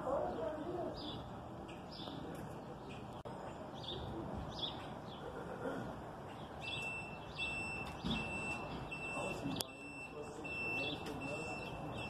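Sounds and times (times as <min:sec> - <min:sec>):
distant voices: 0:00.0 - 0:12.0
high electronic beep: 0:06.6 - 0:12.0.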